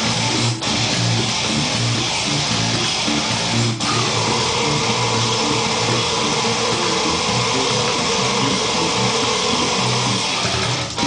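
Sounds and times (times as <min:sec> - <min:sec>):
death metal with electric bass: 0:00.0 - 0:11.0.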